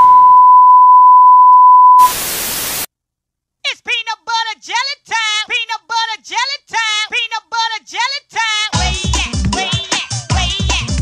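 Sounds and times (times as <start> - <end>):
electronic test tone: 0.0 - 2.9.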